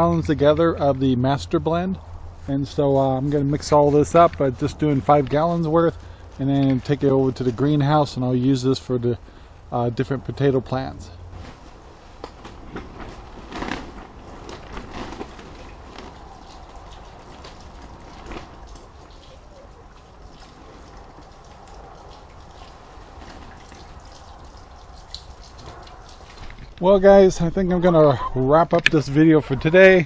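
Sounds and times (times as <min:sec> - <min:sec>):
liquid trickling from a jug: 0:14.4 - 0:26.8.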